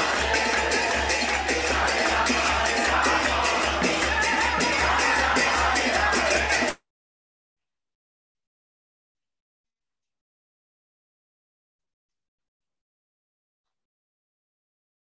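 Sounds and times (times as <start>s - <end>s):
pulsing hand drum: 0.0s - 6.7s
crowd chanting: 0.0s - 6.8s.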